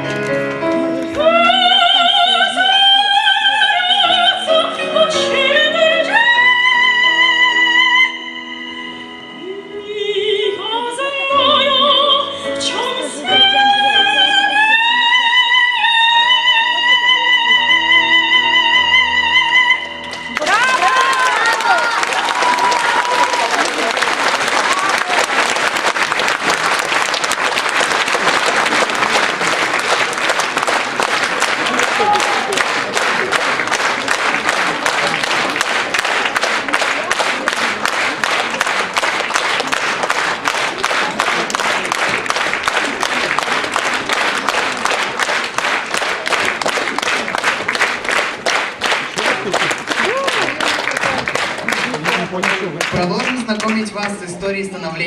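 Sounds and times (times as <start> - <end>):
audience applauding: 19.9 - 54.7.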